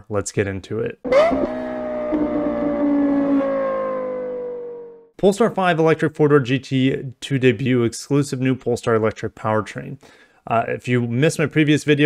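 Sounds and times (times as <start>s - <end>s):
car engine revved high: 1.1s - 4.6s.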